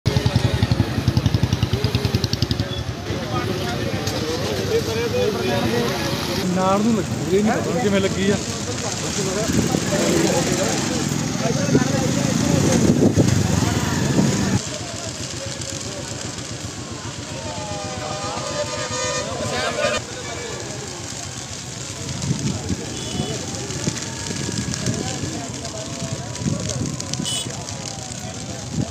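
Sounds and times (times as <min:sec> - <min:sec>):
field fire crackling: 0:00.1 - 0:28.9.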